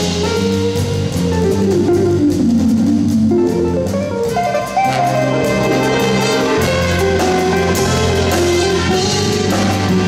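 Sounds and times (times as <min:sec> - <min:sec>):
bass: 0:00.0 - 0:10.0
soft drums: 0:00.0 - 0:10.0
jazz guitar solo: 0:01.3 - 0:10.0.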